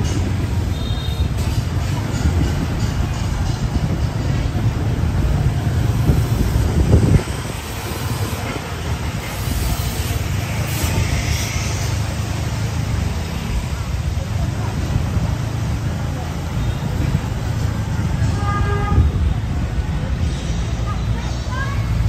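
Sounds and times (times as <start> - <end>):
motorbike engines passing: 0.0 - 22.0.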